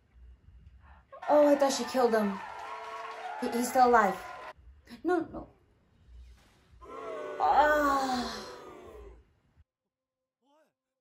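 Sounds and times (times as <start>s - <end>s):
woman moaning in distress: 6.9s - 9.2s.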